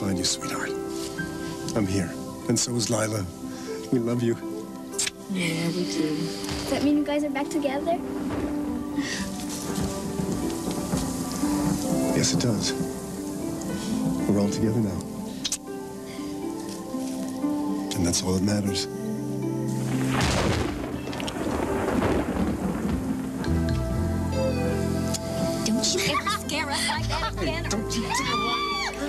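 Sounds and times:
music of sustained notes: 0.0 - 29.0
steady rain falling: 0.0 - 29.0
thunder rumbling: 5.4 - 16.6, 19.7 - 29.0.

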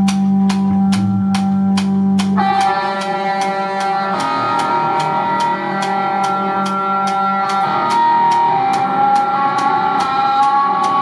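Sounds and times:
held electric guitar notes: 0.0 - 11.0
steady cymbal beat: 0.0 - 11.0
live instrumental rock band: 0.2 - 11.0.

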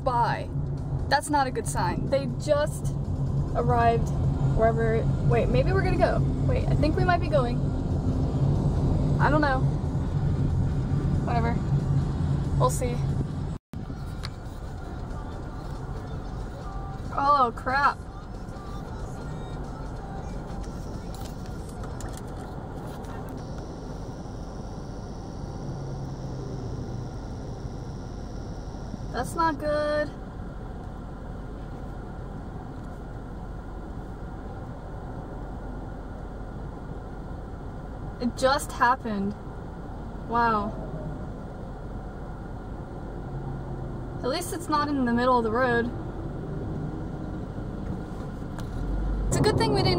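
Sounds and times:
car engine: 0.0 - 49.9
tyres on road: 0.0 - 49.9.

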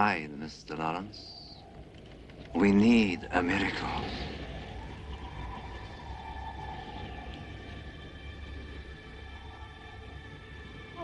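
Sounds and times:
low hum: 0.0 - 11.0
soft sustained film music notes: 0.0 - 11.0.

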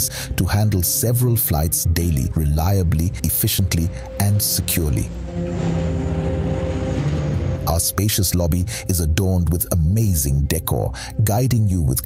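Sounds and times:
jet airliner taking off: 3.2 - 9.2.

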